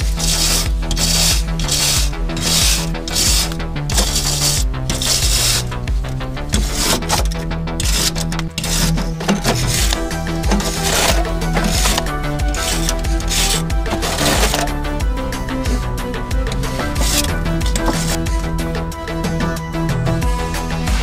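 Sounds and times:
wire brush scrubbing metal: 0.0s - 18.6s
background music with steady beat: 0.0s - 21.0s.

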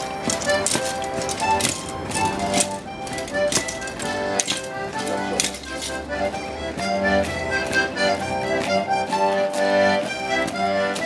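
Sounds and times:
accordion folk dance tune: 0.0s - 11.0s
sharp clacks: 0.0s - 11.0s.

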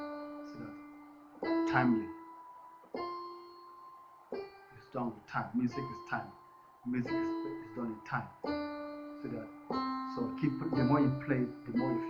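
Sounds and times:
piano notes: 0.0s - 12.0s.

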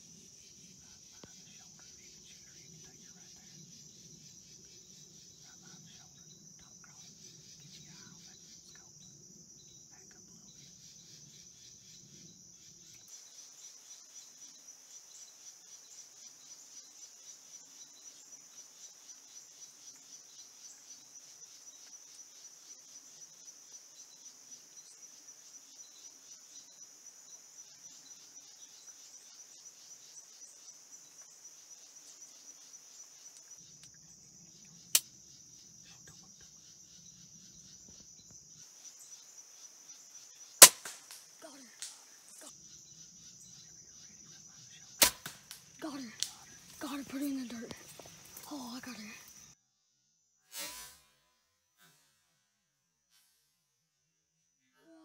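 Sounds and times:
crickets chirping: 0.0s - 51.8s, 53.8s - 55.0s
crossbow shot: 40.6s - 42.0s, 45.0s - 45.6s, 50.5s - 51.2s
sharp crack: 40.6s - 42.0s, 45.0s - 46.4s.

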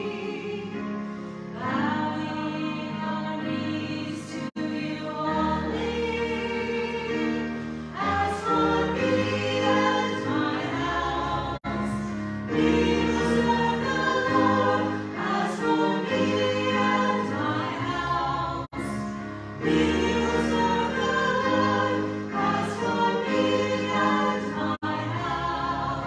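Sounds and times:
women's vocal group singing: 0.0s - 0.9s, 1.5s - 11.9s, 12.5s - 18.7s, 19.6s - 26.0s
keyboard accompaniment: 0.0s - 26.0s.

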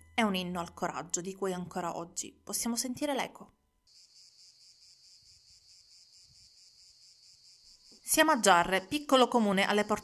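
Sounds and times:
high-pitched insect chirring: 3.9s - 10.0s.

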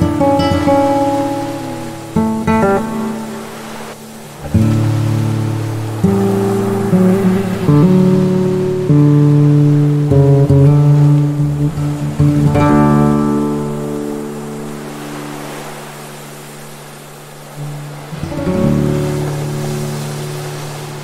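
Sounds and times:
acoustic guitar music: 0.0s - 21.0s.

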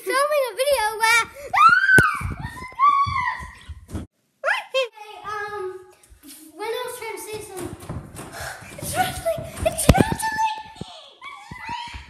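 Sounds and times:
girl shrieking and squealing: 1.4s - 3.9s, 10.8s - 12.0s
girl screaming: 1.5s - 3.8s.

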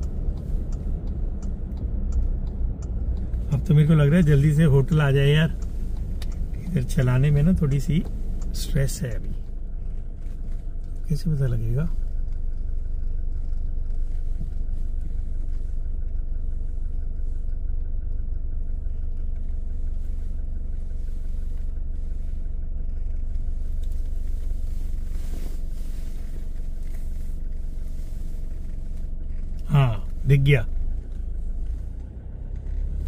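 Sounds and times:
car engine and road rumble: 0.0s - 33.0s.

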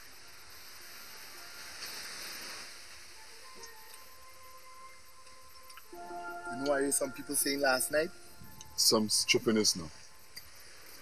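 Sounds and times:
faint held musical tones: 0.0s - 11.0s
steady rushing hiss: 0.0s - 11.0s.

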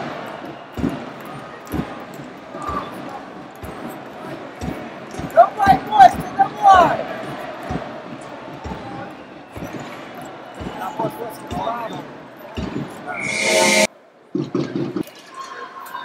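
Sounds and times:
crowd chatter: 0.0s - 16.0s
rising swell of crowd noise: 13.1s - 13.9s.

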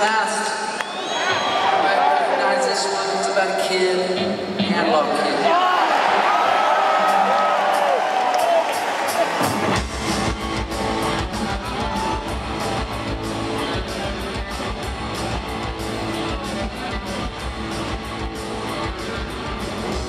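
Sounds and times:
driving drum beat: 8.6s - 20.0s
rock band playing live: 9.0s - 20.0s.

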